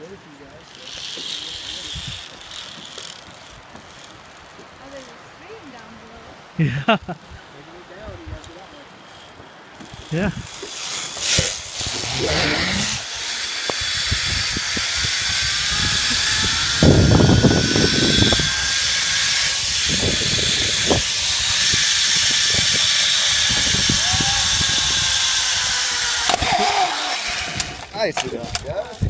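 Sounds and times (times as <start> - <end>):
zipline pulleys whining on cable: 0.0 - 5.7, 8.0 - 28.6
wind buffeting microphone: 9.9 - 10.6, 11.3 - 26.6.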